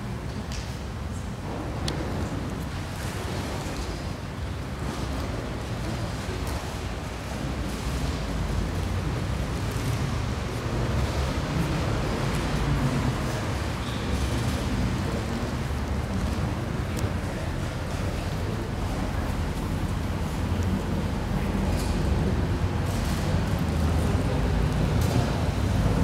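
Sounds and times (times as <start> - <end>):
indistinct crowd murmur: 0.0 - 26.0
low rumble of hall noise: 0.0 - 26.0.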